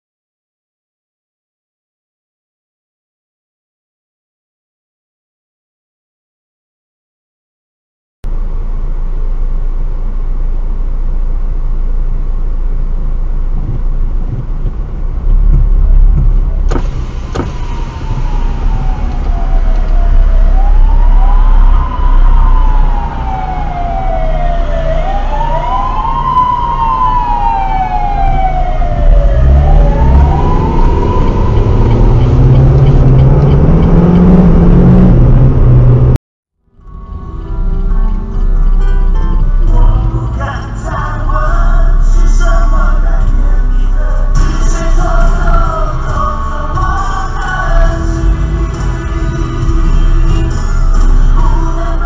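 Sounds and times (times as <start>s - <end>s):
car engine and road hum: 8.2s - 52.0s
emergency vehicle siren wailing: 16.7s - 36.2s
engine revving up: 28.4s - 36.2s.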